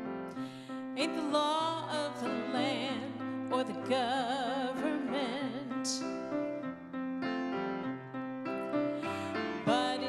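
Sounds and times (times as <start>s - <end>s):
piano playing chords: 0.0s - 10.0s.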